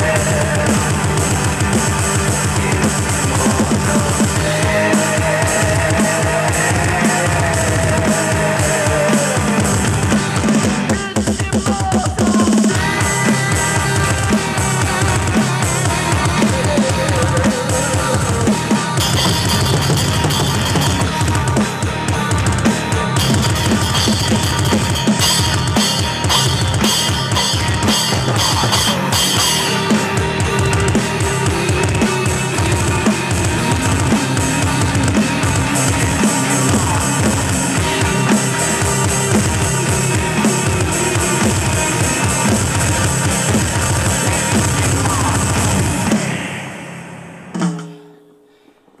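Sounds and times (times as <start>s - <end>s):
heavy metal song: 0.0s - 48.0s
rapid bass drum strokes: 0.0s - 48.1s
heavy metal track: 0.0s - 48.2s.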